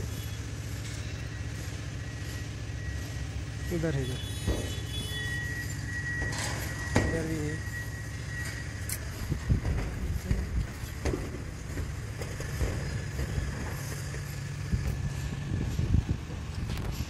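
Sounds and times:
steady low rumble: 8.3s - 17.0s
footsteps on steel roof sheeting: 9.2s - 15.0s.

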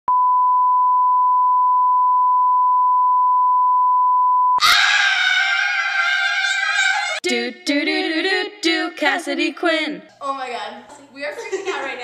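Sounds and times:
women screaming in excitement: 4.6s - 7.2s.

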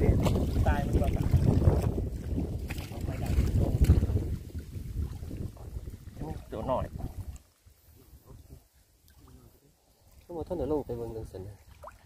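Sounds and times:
wind rumbling on microphone: 0.0s - 8.6s
water sloshing around a body: 0.0s - 12.0s.

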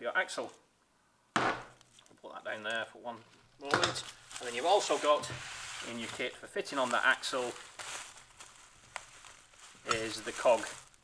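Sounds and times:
bubble wrap rustling: 3.2s - 11.0s.

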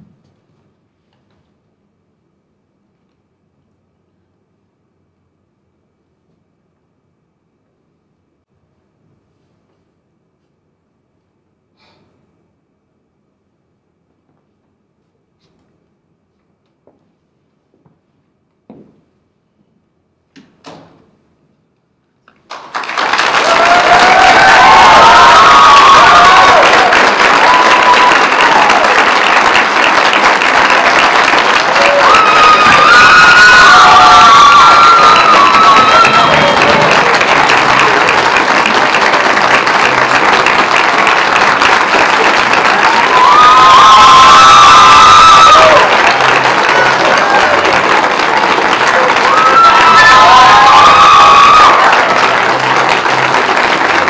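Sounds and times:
audience applauding: 22.4s - 54.0s
crowd cheering and whooping: 23.0s - 54.0s.

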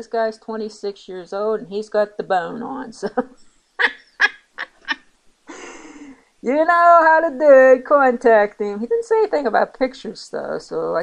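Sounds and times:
woman laughing: 3.0s - 6.2s.

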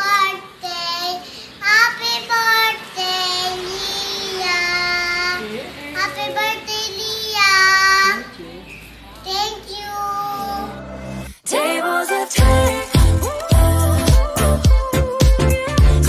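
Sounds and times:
girl singing: 0.0s - 8.2s, 11.4s - 16.0s.

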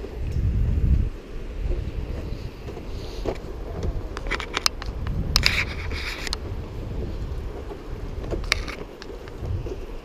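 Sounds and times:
wind buffeting microphone: 0.0s - 10.0s
sharp clicks and rattles: 1.6s - 10.0s.

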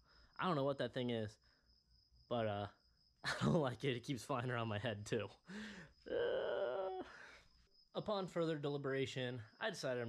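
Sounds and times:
man groaning in disgust: 6.1s - 7.1s.

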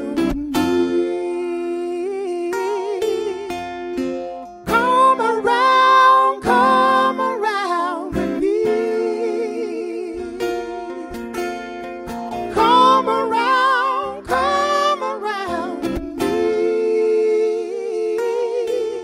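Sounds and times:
man singing wordless vibrato notes: 0.0s - 11.7s, 12.3s - 19.0s.

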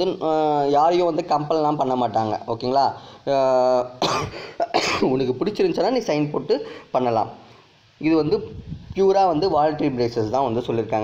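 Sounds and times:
man coughing: 4.0s - 5.2s.

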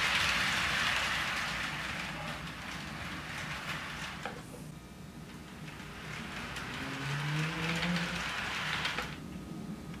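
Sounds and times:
model train wheels rolling: 0.0s - 9.4s.

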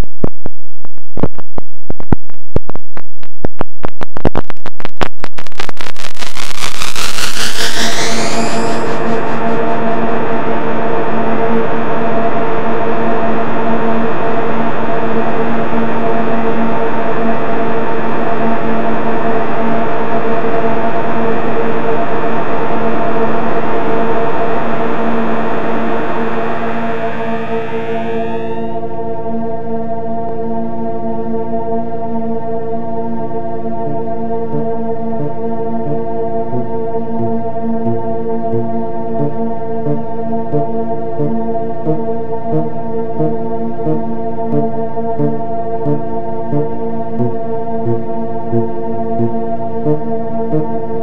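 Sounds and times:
dense noisy synthesizer chord: 4.8s - 29.7s, 33.2s - 51.0s
synthesizer upward sweep: 5.6s - 10.4s, 25.9s - 28.7s, 34.5s - 49.3s, 49.9s - 50.7s
synthesizer clicks: 43.9s - 46.6s.

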